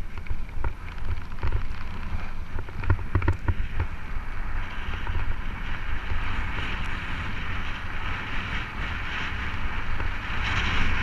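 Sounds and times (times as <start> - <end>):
bike tyres on gravel: 0.0 - 11.0
sharp bike rattles: 0.0 - 11.0
wind buffeting microphone: 0.0 - 11.0.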